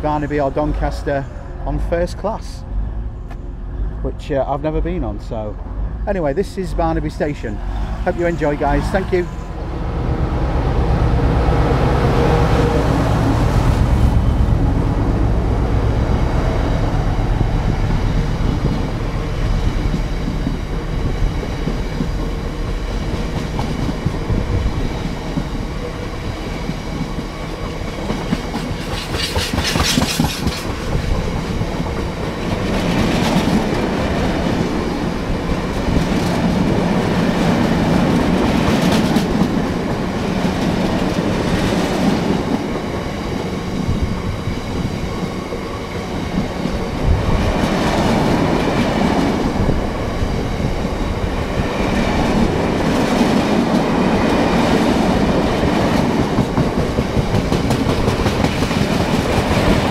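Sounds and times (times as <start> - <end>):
diesel locomotive engine running: 0.0 - 59.9
train wheels clattering over rail joints: 18.5 - 43.9, 51.9 - 59.9.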